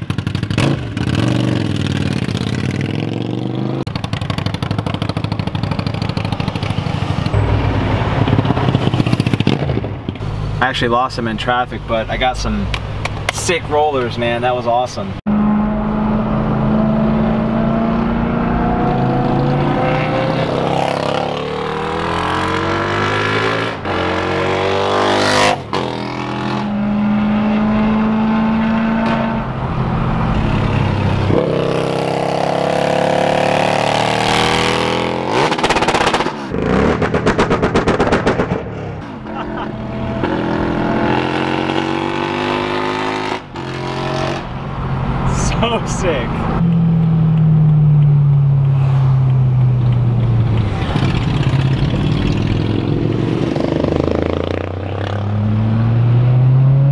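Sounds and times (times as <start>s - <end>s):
engines revving and accelerating: 0.6s - 3.9s, 15.3s - 56.9s.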